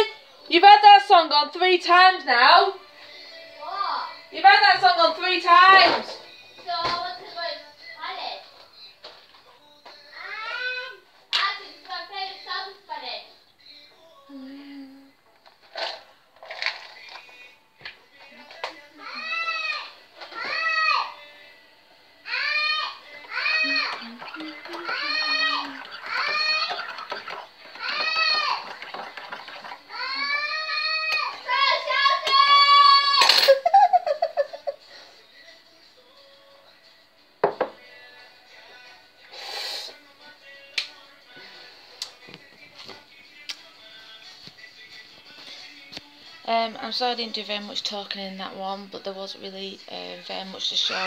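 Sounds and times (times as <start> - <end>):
song with singing voice: 0.0 - 51.0.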